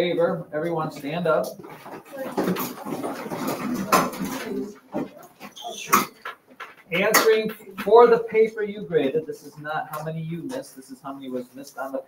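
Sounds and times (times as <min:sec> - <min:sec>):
people shuffling: 0:01.4 - 0:08.4
chairs scraping on floor: 0:01.6 - 0:06.9.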